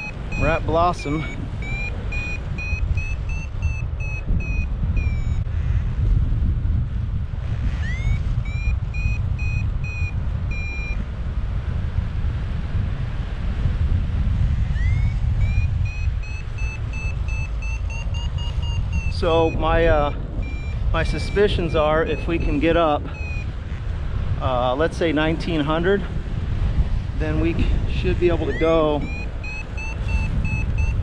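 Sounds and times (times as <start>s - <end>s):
variometer short beeps: 0.0s - 5.5s, 7.7s - 11.1s, 14.7s - 23.6s, 27.3s - 31.0s
wind rumbling on microphone: 0.0s - 31.0s.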